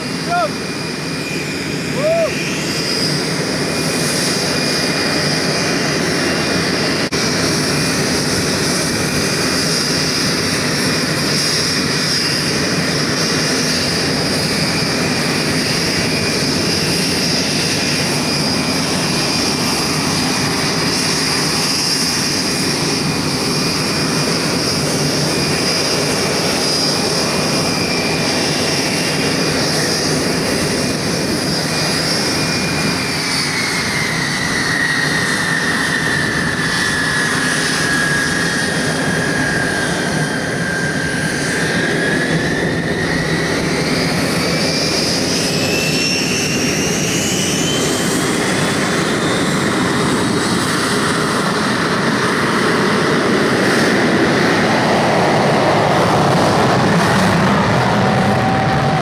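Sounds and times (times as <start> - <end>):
jet engines whining: 0.0 - 59.0.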